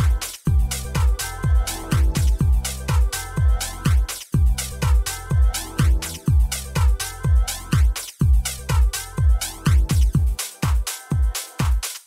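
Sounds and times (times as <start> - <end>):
house music with kick drum: 0.0 - 12.0.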